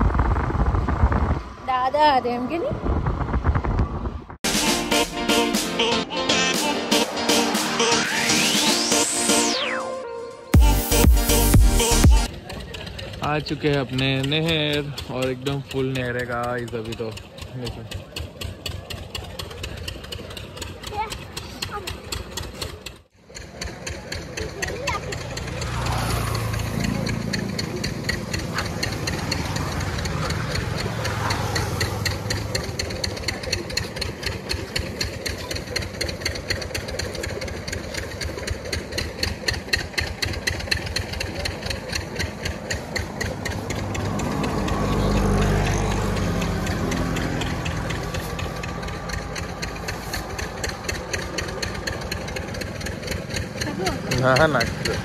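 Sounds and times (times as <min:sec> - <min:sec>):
road traffic: 0:00.0 - 0:55.0
engine knocking rhythm: 0:10.6 - 0:55.0
vehicle passing close: 0:10.9 - 0:55.0.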